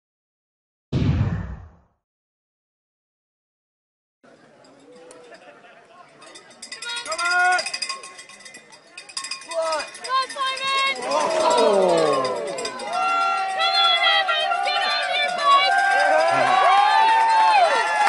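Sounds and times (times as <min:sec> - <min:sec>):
cowbells ringing: 0:04.5 - 0:17.9
spectators shouting: 0:10.1 - 0:18.0.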